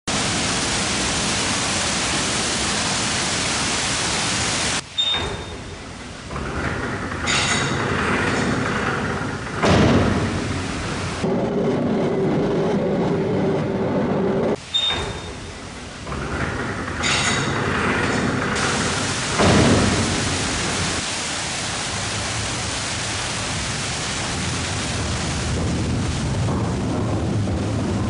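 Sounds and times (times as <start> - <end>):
water splashing over water wheel: 0.0 - 12.5, 14.6 - 28.0
gearing and cable winch running: 6.2 - 9.7, 16.0 - 19.4.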